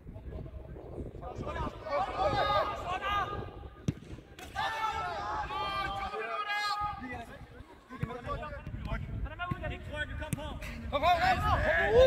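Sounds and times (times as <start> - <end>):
players shouting: 1.6 - 3.4, 4.4 - 7.2
football kick thud: 3.8 - 4.2.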